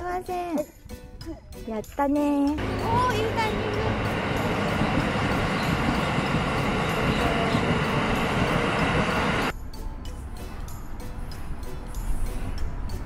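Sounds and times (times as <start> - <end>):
train passing: 2.6 - 9.5.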